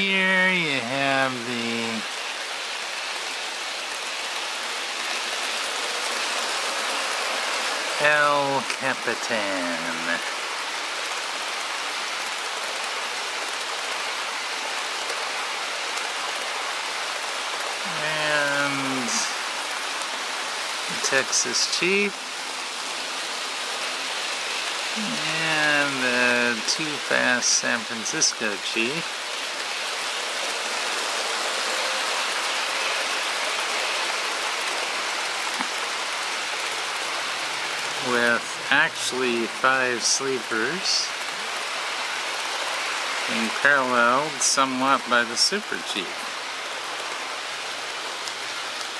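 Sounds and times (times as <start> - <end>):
person speaking: 0.0 - 2.1, 8.0 - 10.3, 17.8 - 19.4, 20.9 - 22.2, 24.9 - 29.1, 38.0 - 41.1, 43.3 - 46.2
model trains rolling on rails: 0.8 - 20.2, 20.8 - 35.5, 36.3 - 48.9
model train wheels rolling on rails: 2.4 - 10.2.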